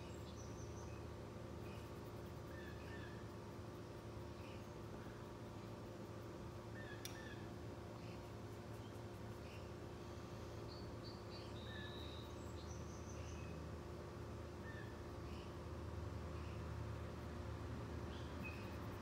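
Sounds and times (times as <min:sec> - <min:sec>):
steady low hum: 0:00.0 - 0:19.0
faint high-pitched chirps: 0:06.7 - 0:13.6, 0:18.1 - 0:19.0.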